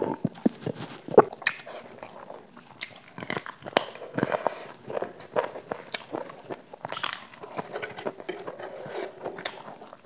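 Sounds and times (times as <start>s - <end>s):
person chewing with wet smacks: 0.0s - 10.0s.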